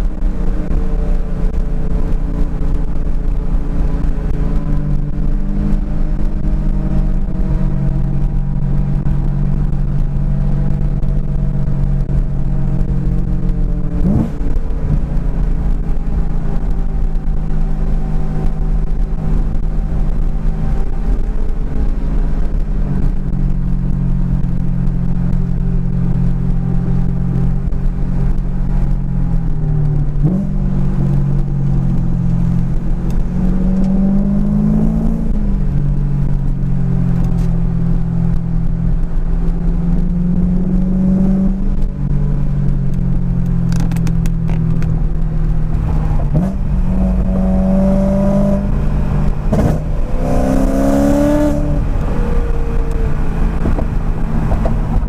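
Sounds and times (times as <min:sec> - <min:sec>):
car engine from inside cabin: 0:00.0 - 0:55.0.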